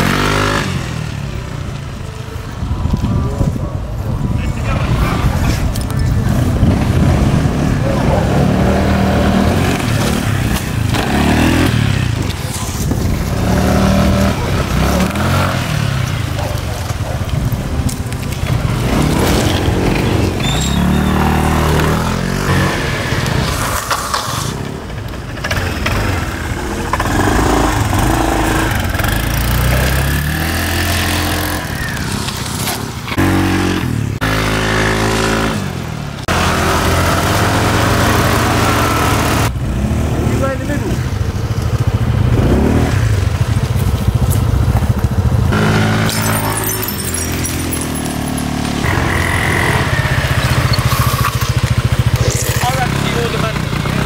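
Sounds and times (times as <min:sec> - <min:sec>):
scooter engine revving: 0:00.0 - 0:02.7, 0:04.5 - 0:54.0.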